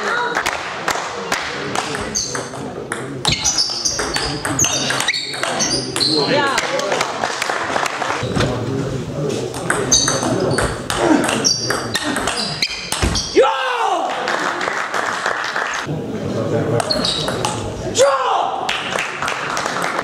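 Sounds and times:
shoes squeaking on floor: 0:02.0 - 0:02.5, 0:03.2 - 0:06.4, 0:09.9 - 0:13.4, 0:16.8 - 0:17.4.

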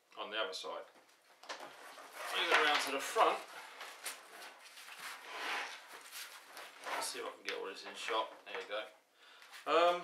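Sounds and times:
fabric and straps rustling: 0:01.1 - 0:08.3.

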